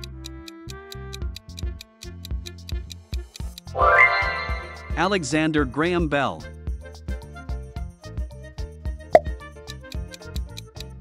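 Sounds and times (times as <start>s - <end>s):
background music with steady beat: 0.0s - 11.0s
cartoon pop sound effect: 9.1s - 9.3s.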